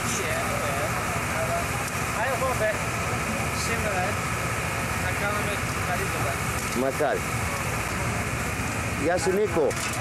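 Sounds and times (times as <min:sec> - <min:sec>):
gas broiler hissing: 0:00.0 - 0:09.9.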